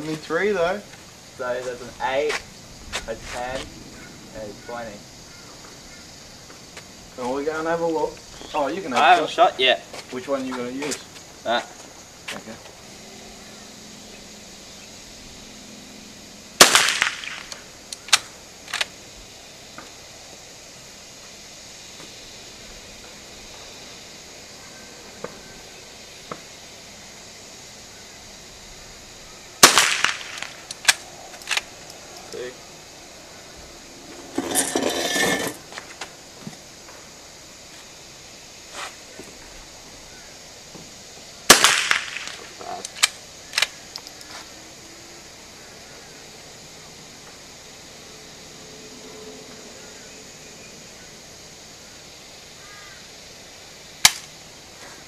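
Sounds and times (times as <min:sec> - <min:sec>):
rifle shots: 0:16.6 - 0:17.6, 0:29.6 - 0:31.0, 0:41.5 - 0:42.5
sharp rifle bolt clicks: 0:41.6 - 0:44.2.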